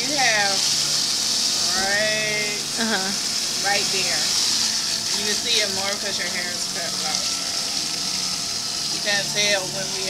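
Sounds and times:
water spraying into sink: 0.0s - 10.0s.

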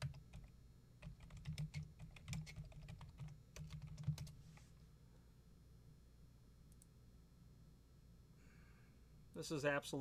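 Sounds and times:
computer keyboard typing: 0.0s - 4.4s.

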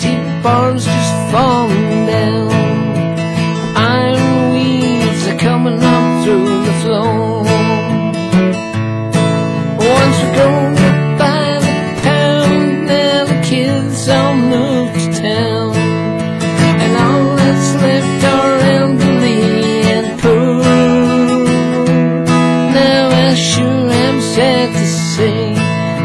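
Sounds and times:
acoustic guitar strumming: 0.0s - 26.0s.

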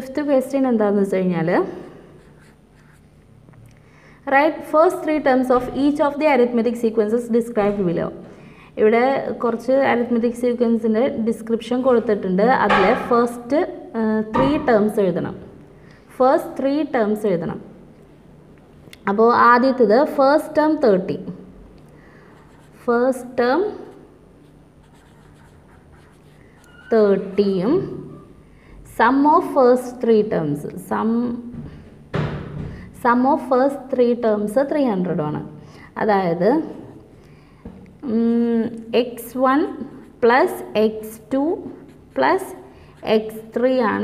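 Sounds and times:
marker scratching on paper: 2.2s - 3.1s, 22.3s - 28.2s, 39.8s - 43.6s.

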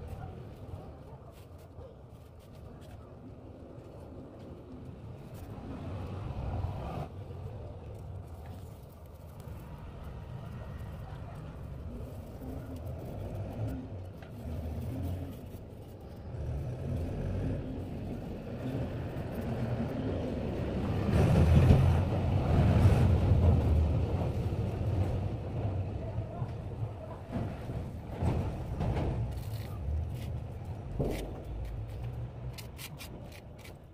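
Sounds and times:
vehicle engine rumble: 0.0s - 33.9s.

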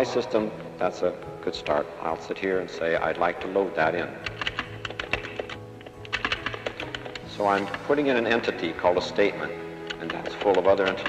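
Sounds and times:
keyboard typing: 4.2s - 7.8s, 9.8s - 11.0s.

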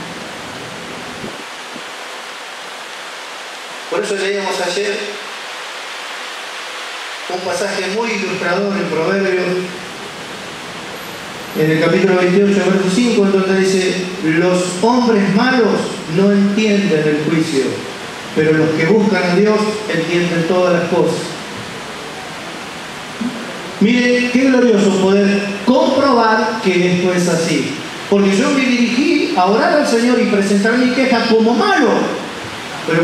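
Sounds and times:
steady background hiss: 0.0s - 33.0s
man speaking: 3.9s - 5.2s, 7.3s - 9.8s, 11.6s - 21.4s, 23.2s - 33.0s.

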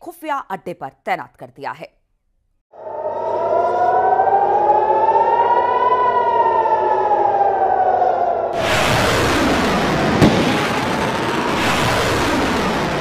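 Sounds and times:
air-raid siren wailing: 2.7s - 13.0s
low rumble: 8.4s - 13.0s.

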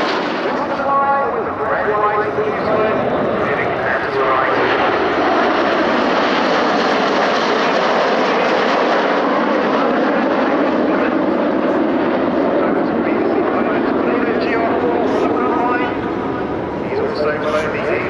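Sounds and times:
steady jet noise: 0.0s - 18.0s.

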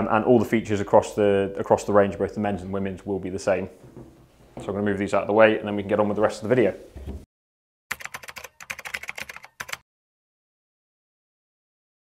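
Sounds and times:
rapid sharp clicks: 7.9s - 9.8s.

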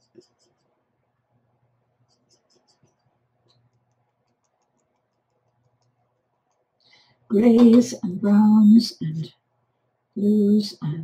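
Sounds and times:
paint spattering ticks: 2.0s - 6.7s.

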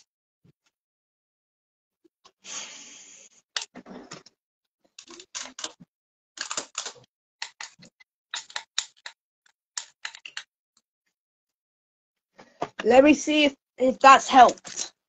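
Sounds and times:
small clicks and scrapes: 3.6s - 10.5s, 14.4s - 15.0s.

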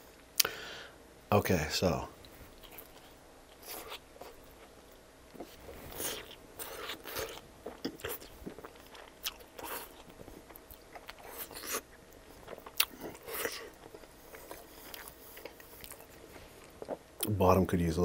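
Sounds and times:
chewing pizza crust crunching: 2.2s - 17.3s.

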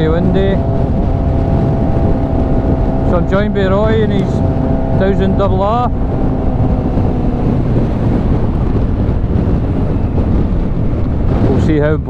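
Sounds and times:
faint motorcycle engine: 0.0s - 12.0s
road noise: 0.0s - 12.0s
wind buffeting microphone: 0.0s - 12.0s.

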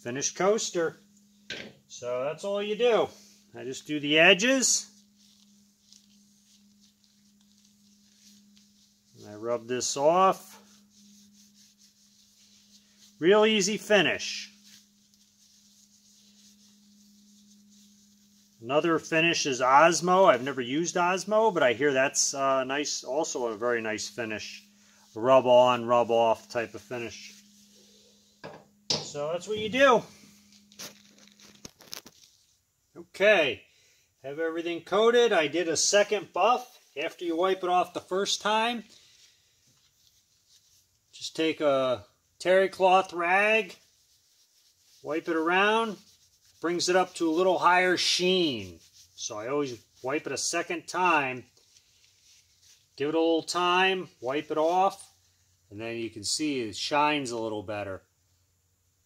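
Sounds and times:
cloth rag rubbing: 0.0s - 1.5s, 2.3s - 33.6s, 34.3s - 56.8s
steady low hum: 0.0s - 34.1s
rag rustling: 4.4s - 20.1s, 23.8s - 32.6s.

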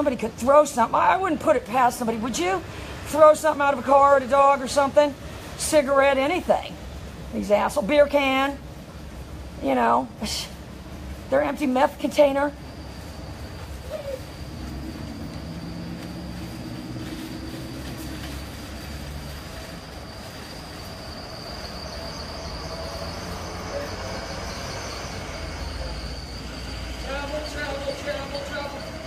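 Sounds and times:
faint high whine: 0.0s - 29.0s
vehicle engine hum: 10.6s - 29.0s.

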